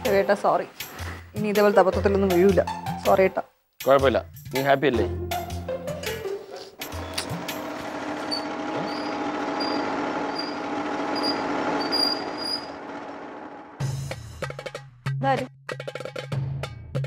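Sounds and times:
motor scooter engine running: 0:06.9 - 0:13.8.

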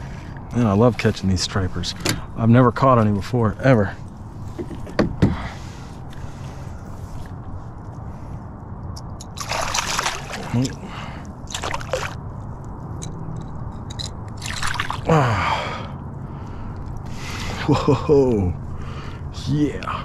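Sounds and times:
steady low hum: 0:00.0 - 0:20.0
fish splashing in water: 0:09.4 - 0:10.7, 0:11.5 - 0:12.2, 0:14.4 - 0:15.1.

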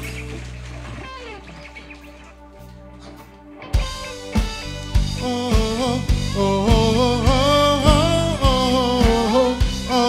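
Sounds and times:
band's held chords: 0:00.0 - 0:10.0.

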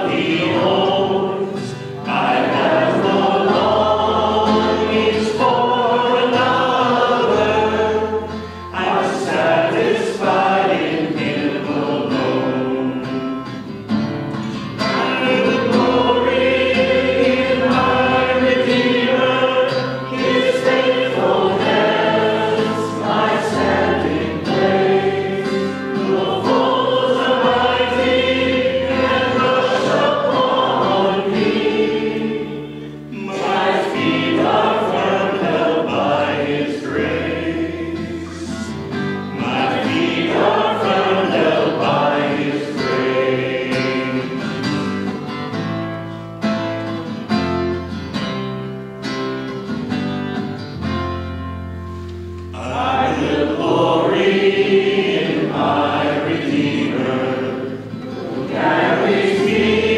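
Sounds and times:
congregation singing a hymn: 0:00.0 - 0:46.2, 0:49.6 - 0:59.9
second guitar: 0:00.0 - 0:59.9
strummed acoustic guitar: 0:00.0 - 0:59.9.

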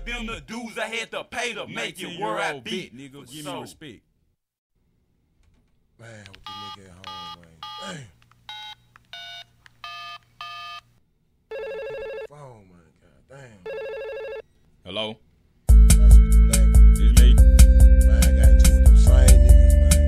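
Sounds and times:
phone line ringing: 0:11.5 - 0:12.3, 0:13.7 - 0:14.4.

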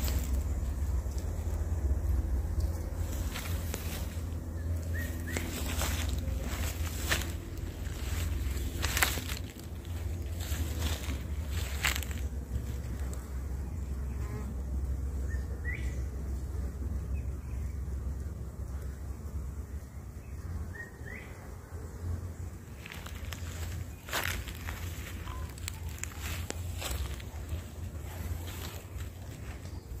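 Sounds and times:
steady low rumble: 0:00.0 - 0:20.7, 0:21.4 - 0:30.0
honeybees buzzing: 0:00.0 - 0:30.0.

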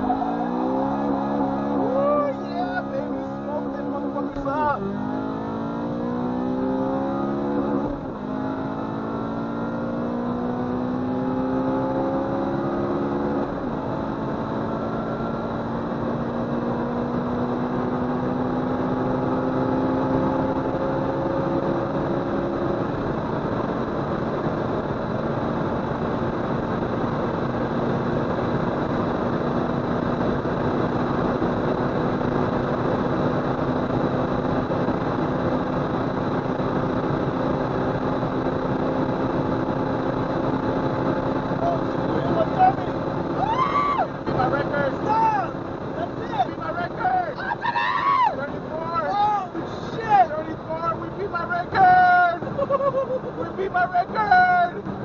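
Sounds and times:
car engine at full throttle: 0:00.0 - 0:55.0
wind and road noise: 0:00.0 - 0:55.0.

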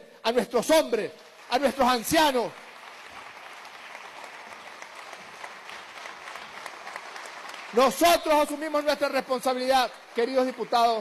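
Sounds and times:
crowd applauding: 0:00.6 - 0:11.0.

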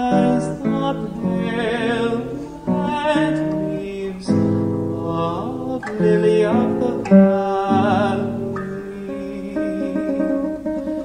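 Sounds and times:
guitar chord plucked: 0:00.0 - 0:11.0
man singing with vibrato: 0:00.0 - 0:11.0.

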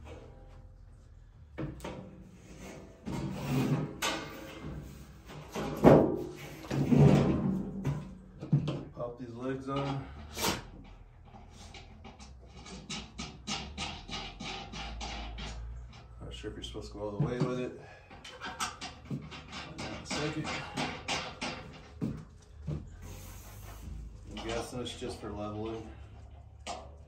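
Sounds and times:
steel sheet flexing and knocking: 0:01.6 - 0:08.9, 0:09.7 - 0:16.2, 0:17.3 - 0:27.0.

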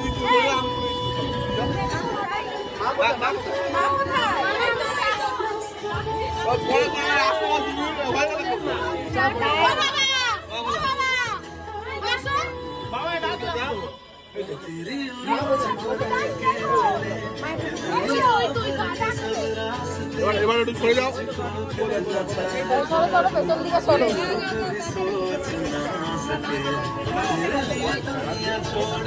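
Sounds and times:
background music: 0:00.0 - 0:29.0
people talking over one another: 0:00.0 - 0:29.0
excited voices calling out: 0:02.0 - 0:12.8, 0:15.3 - 0:19.7.

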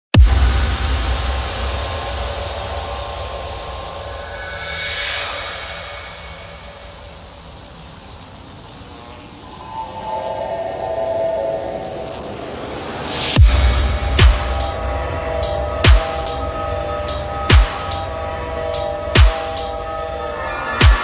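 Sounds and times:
hissing noise swell: 0:00.4 - 0:21.0
held synth tones: 0:09.4 - 0:13.0.

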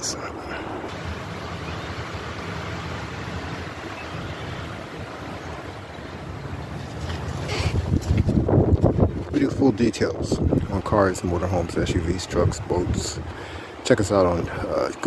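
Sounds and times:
wind buffeting microphone: 0:00.0 - 0:14.8.

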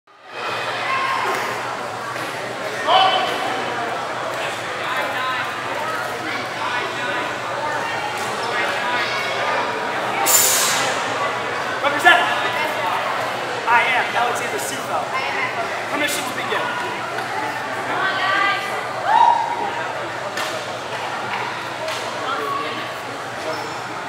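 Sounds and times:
crowd chatter echoing: 0:00.1 - 0:24.0
short sharp hiss: 0:10.2 - 0:11.1.

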